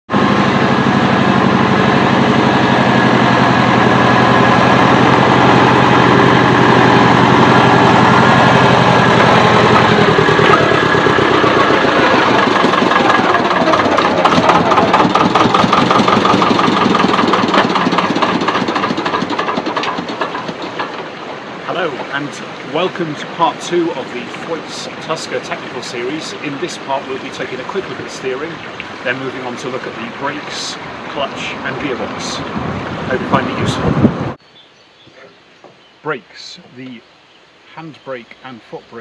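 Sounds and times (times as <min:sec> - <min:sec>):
tractor engine running: 0:00.1 - 0:34.4.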